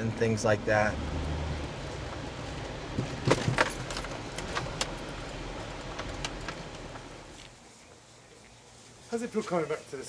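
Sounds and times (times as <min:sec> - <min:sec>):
car running: 0:00.0 - 0:07.5.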